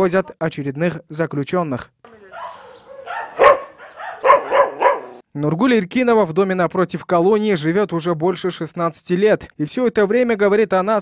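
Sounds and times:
dog barking: 2.3s - 5.2s.

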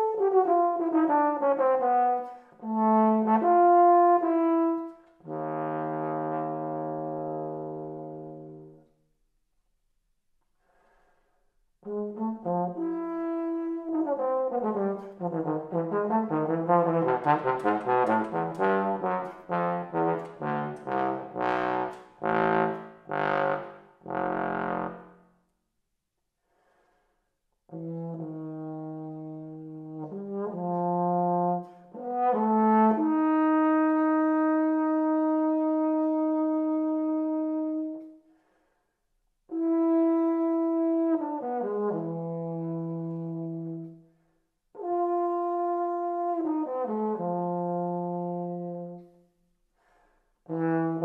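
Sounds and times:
bass trombone playing: 0.0s - 8.8s, 11.8s - 25.2s, 27.7s - 38.1s, 39.5s - 43.9s, 44.8s - 49.1s, 50.5s - 51.0s.

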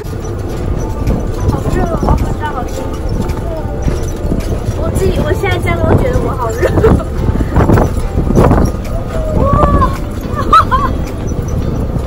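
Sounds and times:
buggy rumbling over dirt track: 0.0s - 12.0s
wind buffeting microphone: 0.0s - 12.0s.

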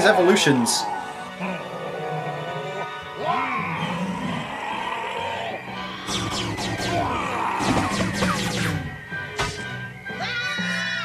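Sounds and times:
dramatic background music: 0.0s - 11.0s
cartoon monster growl: 0.6s - 8.2s.

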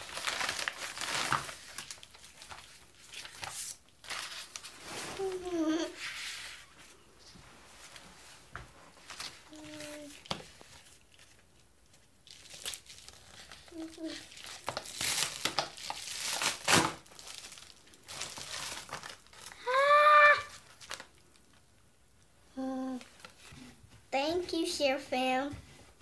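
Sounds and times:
packaging rustling and crinkling: 0.0s - 6.9s, 7.8s - 19.6s, 20.5s - 21.6s
child exclaiming: 19.6s - 20.6s.

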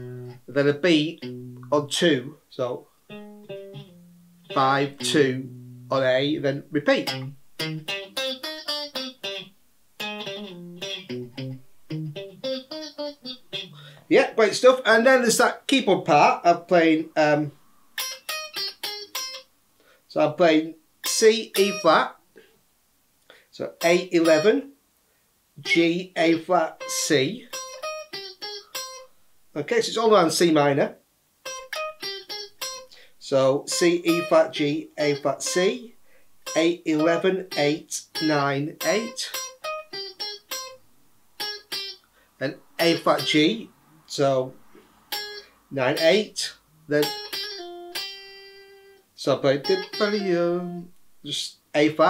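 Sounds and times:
clean electric guitar notes: 0.0s - 2.3s, 3.1s - 14.0s, 46.9s - 49.0s, 49.6s - 50.9s
electric guitar picking notes: 0.0s - 2.4s, 3.1s - 14.0s, 18.0s - 19.5s, 21.0s - 21.9s, 24.0s - 24.5s, 25.6s - 29.1s, 31.4s - 33.1s, 33.7s - 40.8s, 41.4s - 42.1s, 42.8s - 43.7s, 44.4s - 51.0s.

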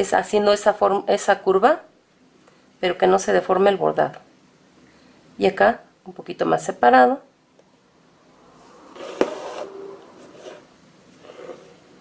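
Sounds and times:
faint brushing sounds: 8.5s - 12.0s
thread pulled through fabric: 8.8s - 11.8s.

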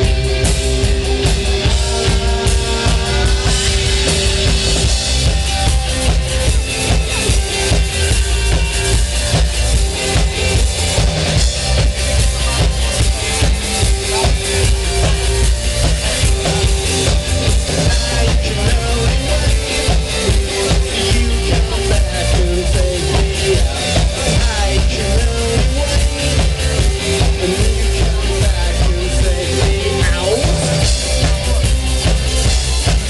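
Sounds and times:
drum kit steady beat: 0.0s - 33.0s
rock band playing live: 0.0s - 33.0s.

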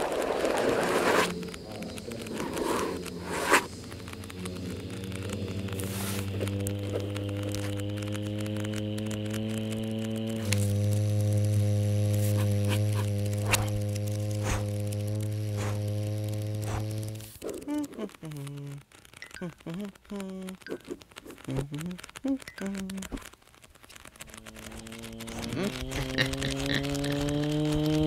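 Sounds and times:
low mechanical hum: 0.0s - 28.0s
sharp clicks: 0.0s - 28.0s.

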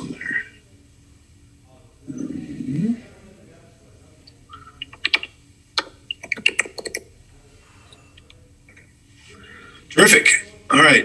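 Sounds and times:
computer keyboard typing: 4.5s - 7.1s.

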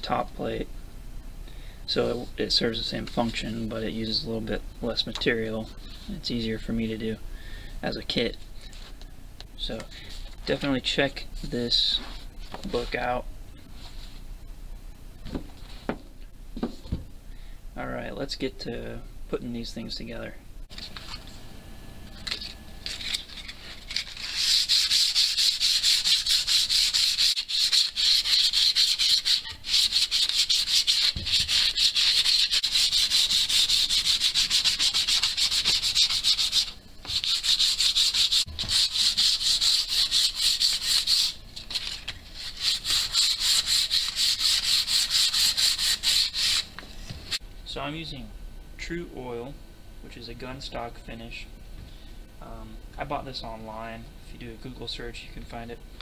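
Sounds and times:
sandpaper sanding wood: 23.8s - 46.7s
paper handling: 41.6s - 42.6s.

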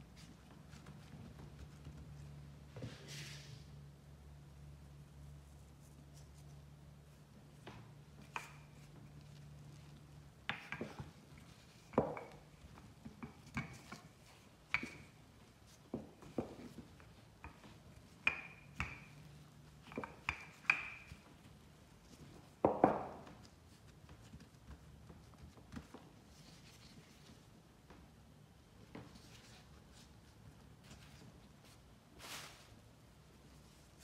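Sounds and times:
rolling pin rolling dough: 7.4s - 27.5s.

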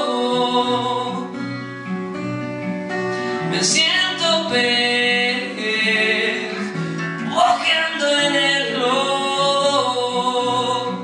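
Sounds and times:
man singing: 0.0s - 1.4s, 3.4s - 11.0s
acoustic guitar: 0.0s - 11.0s.

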